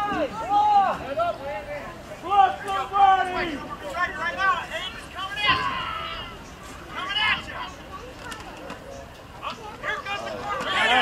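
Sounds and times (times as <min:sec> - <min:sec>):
background hubbub of voices: 0:00.0 - 0:11.0.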